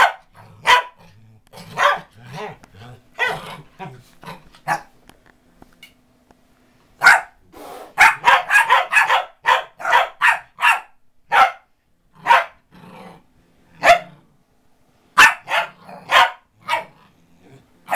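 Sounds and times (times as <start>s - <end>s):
dog barking: 0.0s - 1.0s, 1.7s - 2.6s, 3.2s - 3.5s, 4.6s - 4.9s, 7.0s - 7.4s, 8.0s - 12.6s, 13.8s - 14.2s, 15.2s - 17.0s.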